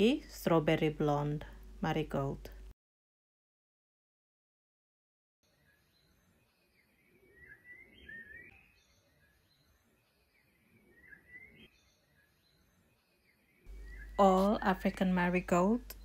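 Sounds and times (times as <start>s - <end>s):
faint bird chirping: 5.4s - 16.0s.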